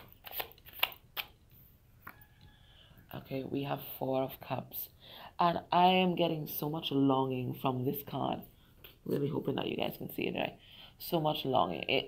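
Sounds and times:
cards being shuffled: 0.0 - 1.4.

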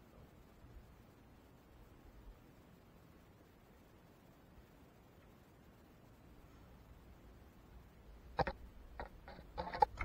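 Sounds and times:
bow clicks and rattles: 8.4 - 10.0.

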